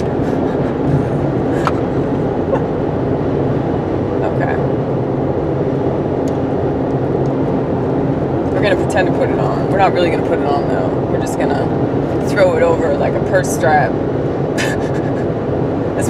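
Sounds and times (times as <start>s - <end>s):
car cabin road and engine drone: 0.0s - 16.0s.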